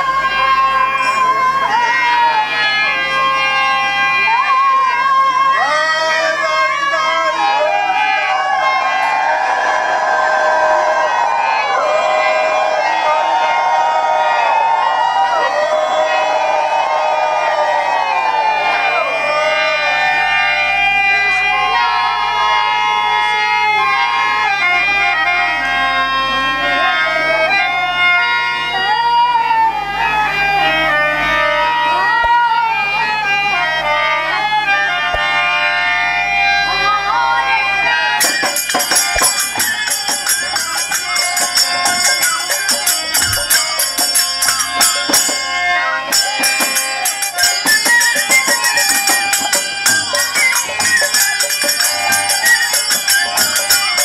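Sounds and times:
bamboo flute melody: 0:00.0 - 0:22.5, 0:36.7 - 0:54.0
crowd crying out together: 0:00.0 - 0:24.6, 0:37.3 - 0:54.0
harmonium chords: 0:00.0 - 0:54.0.

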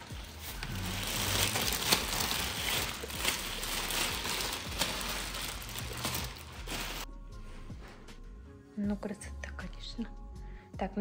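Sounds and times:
plastic film crinkling: 0:00.0 - 0:07.1.

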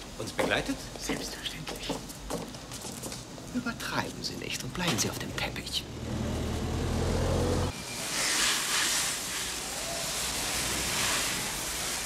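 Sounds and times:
machinery low hum: 0:05.7 - 0:07.8
steady broad hiss: 0:07.2 - 0:12.0.

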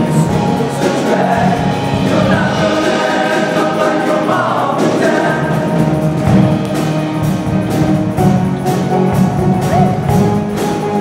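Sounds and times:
choir singing in harmony: 0:00.0 - 0:11.0
instrumental accompaniment: 0:00.0 - 0:11.0.

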